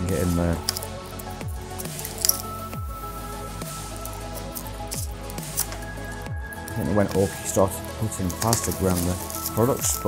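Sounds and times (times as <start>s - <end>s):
background music: 0.0s - 10.0s
shrink wrap crackling: 0.6s - 10.0s.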